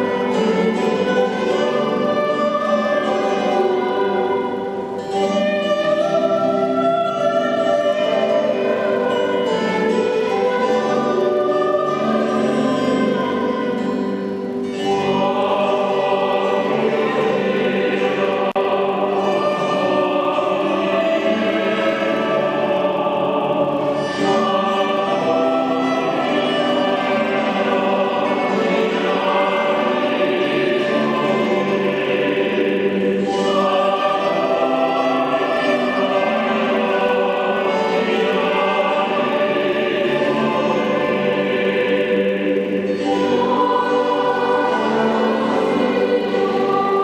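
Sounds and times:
mixed choir singing: 0.0s - 47.0s.

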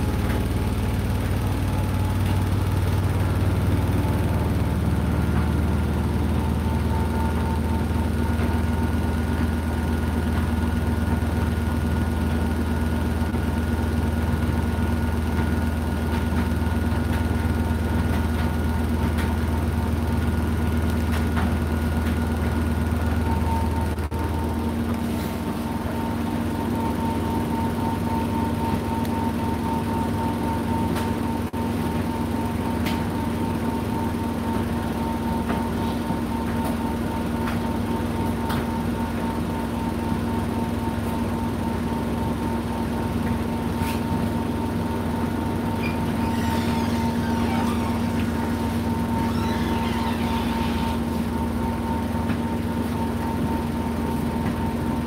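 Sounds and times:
washing machine humming: 0.0s - 55.0s
washing machine whine: 0.0s - 55.0s.

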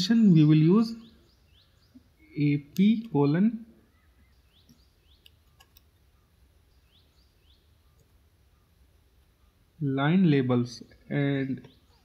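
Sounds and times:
faint rising bird chirps: 3.7s - 10.5s, 11.1s - 12.0s
faint clicks: 4.6s - 5.9s.

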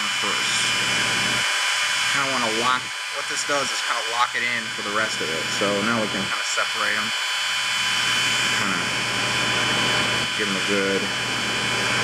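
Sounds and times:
heat gun blowing air: 0.0s - 12.0s.

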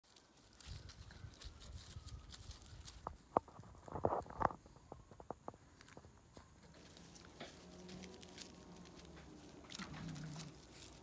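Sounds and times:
dog paws scuffling on gravel: 0.0s - 4.3s, 6.7s - 11.0s.

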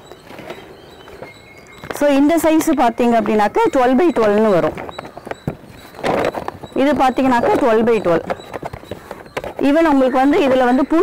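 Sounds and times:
woman speaking: 1.9s - 4.8s, 6.8s - 8.4s, 9.6s - 11.0s
plastic bag rustling and crinkling: 4.6s - 6.8s.

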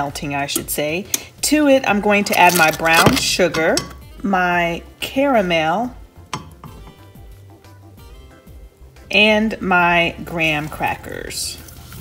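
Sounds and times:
quiet background music: 0.0s - 12.0s
spatula knocking on metal saucepan: 3.5s - 4.1s, 6.3s - 7.1s.

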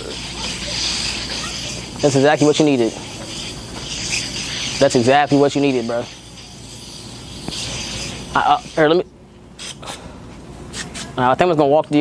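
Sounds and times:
aerosol spray hissing: 0.0s - 9.0s.

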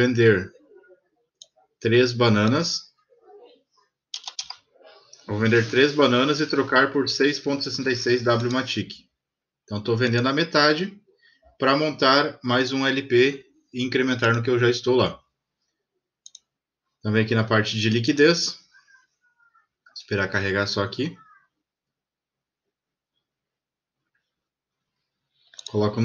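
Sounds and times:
computer mouse click: 4.2s - 4.6s
keyboard keystrokes: 4.2s - 4.6s.

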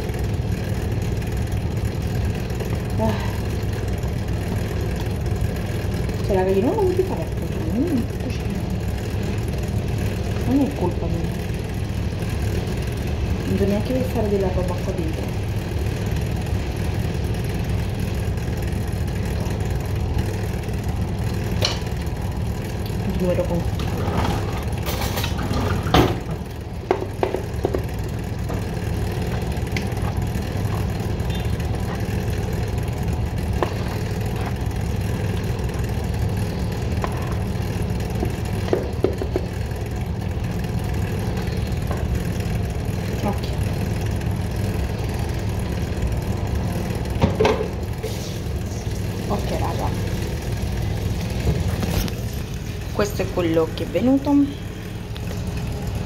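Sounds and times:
motor humming: 0.0s - 56.0s.

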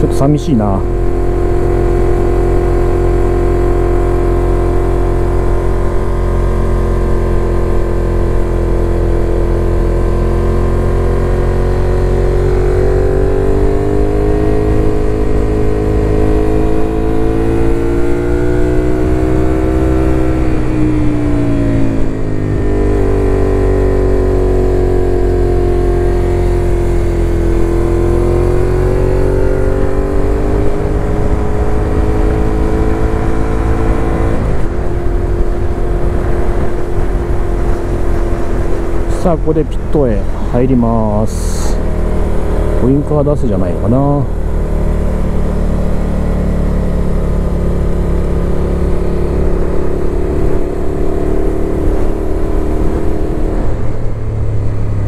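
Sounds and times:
motorcycle engine: 0.0s - 55.0s
wind noise on microphone: 29.0s - 40.6s.

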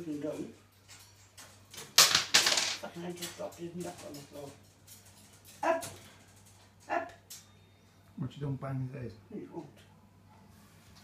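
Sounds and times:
object clattering onto floor: 1.8s - 2.8s.

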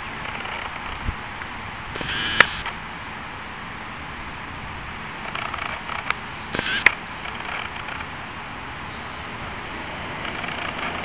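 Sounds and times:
outdoor background hiss: 0.0s - 11.0s
sharp clicks: 2.0s - 2.8s, 5.2s - 8.1s.

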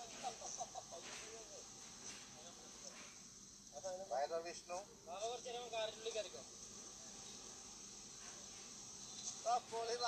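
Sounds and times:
crickets chorus: 0.0s - 10.0s.

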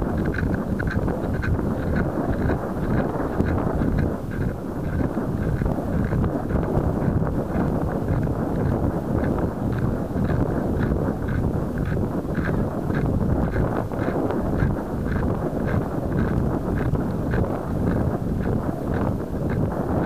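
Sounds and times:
faint irregular ticks: 0.0s - 20.0s
wind buffeting microphone: 0.0s - 20.0s.

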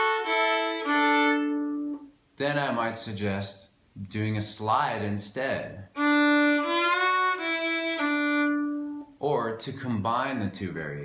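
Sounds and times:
fiddle sliding notes: 0.0s - 2.1s, 6.0s - 9.1s.

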